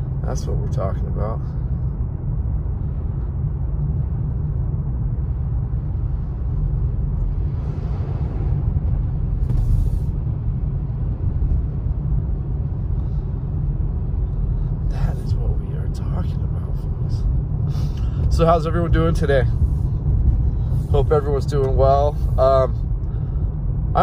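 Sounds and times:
car driving on wet road: 0:00.0 - 0:24.0.

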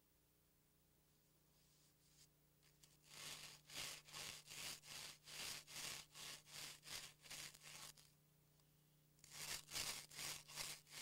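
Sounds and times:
gloved hands scraping wood: 0:02.7 - 0:08.1, 0:09.2 - 0:11.0.

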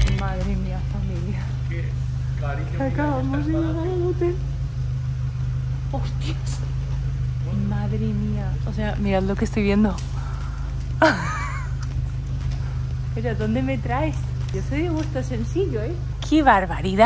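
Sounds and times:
car engine idling: 0:00.0 - 0:17.0
voices talking: 0:00.0 - 0:17.0.

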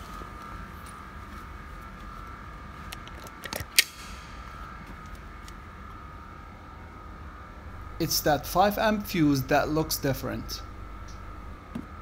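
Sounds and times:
faint high whine: 0:00.0 - 0:12.0
low hum: 0:00.0 - 0:12.0.

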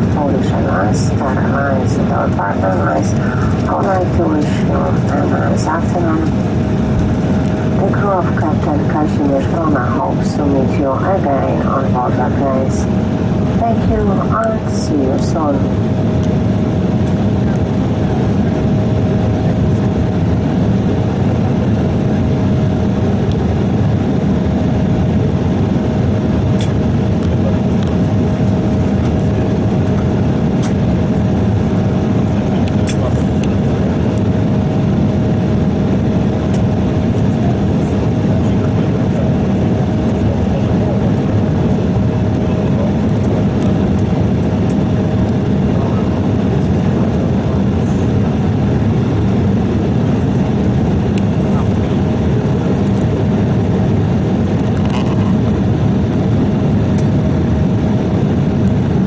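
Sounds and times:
constant hum: 0:00.0 - 0:59.0
jet engine cabin rumble: 0:00.0 - 0:59.0.

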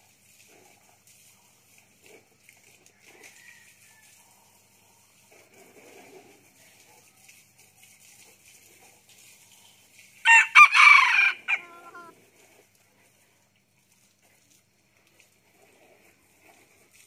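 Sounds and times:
rooster crowing: 0:10.3 - 0:12.1.

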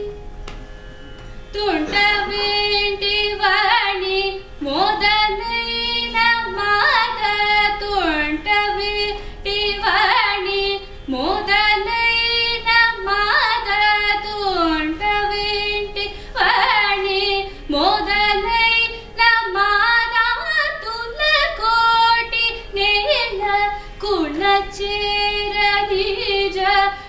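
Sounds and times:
steady drone: 0:00.0 - 0:27.0
woman singing ornamented phrases: 0:01.6 - 0:27.0.

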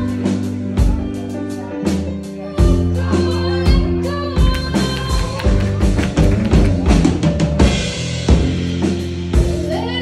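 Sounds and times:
bass: 0:00.0 - 0:10.0
drum kit playing busy pattern: 0:00.0 - 0:10.0.

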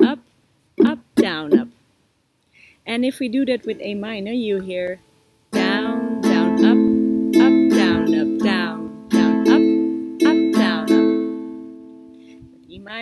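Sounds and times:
ukulele strumming: 0:00.0 - 0:00.2, 0:00.8 - 0:01.8, 0:03.5 - 0:04.9, 0:05.5 - 0:12.7.

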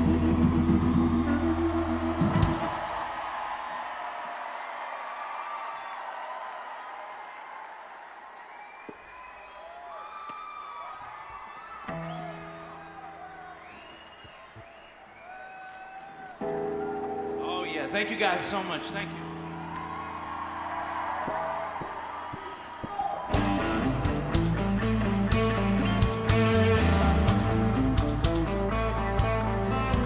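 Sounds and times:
live rock band playing: 0:00.0 - 0:02.7, 0:23.4 - 0:30.0
arena crowd cheering: 0:00.0 - 0:27.2.

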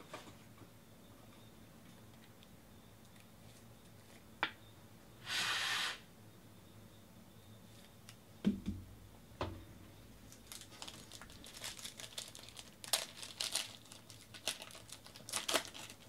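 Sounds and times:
foil wrapper crinkling and tearing: 0:10.3 - 0:16.0.

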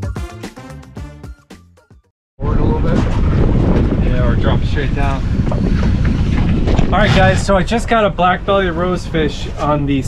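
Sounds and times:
wind buffeting microphone: 0:02.4 - 0:10.0.

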